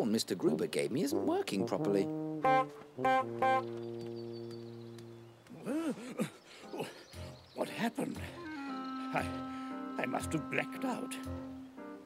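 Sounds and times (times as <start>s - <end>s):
cartoon music chord: 1.7s - 3.8s, 8.3s - 11.7s
rising and falling call: 8.3s - 11.8s.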